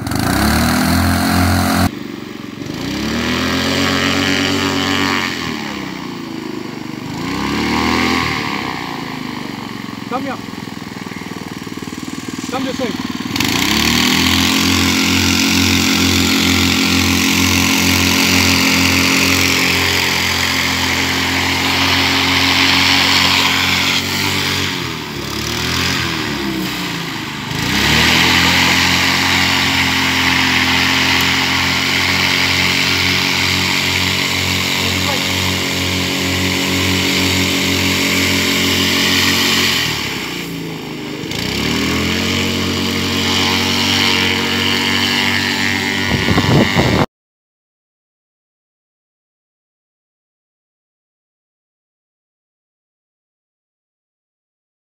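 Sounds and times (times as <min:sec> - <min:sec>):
engine running at high speed: 0:00.0 - 0:47.1
propeller rush: 0:00.0 - 0:47.1.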